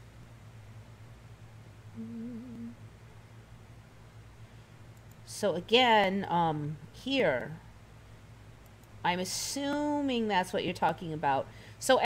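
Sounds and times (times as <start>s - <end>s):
faint low background hum: 0.0s - 12.0s
woman humming: 1.9s - 2.8s.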